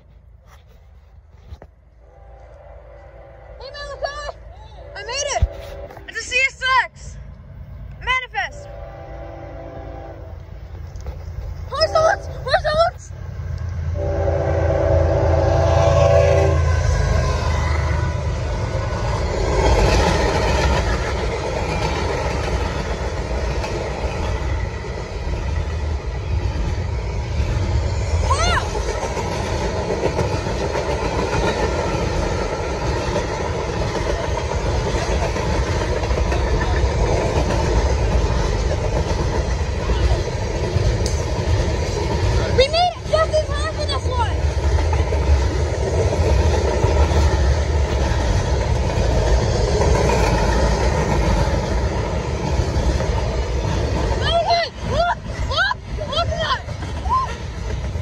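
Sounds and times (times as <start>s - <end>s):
train horn chord: 2.0s - 4.0s, 4.9s - 6.2s, 8.6s - 10.4s, 13.9s - 17.0s
wheels on rails: 10.3s - 14.0s, 15.2s - 58.0s.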